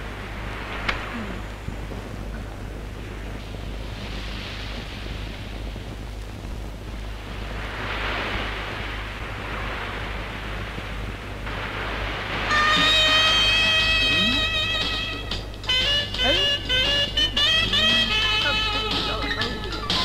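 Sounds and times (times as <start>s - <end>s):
rushing noise: 0.0s - 20.0s
steady low hum: 0.0s - 20.0s
music with sustained high notes: 12.4s - 20.0s.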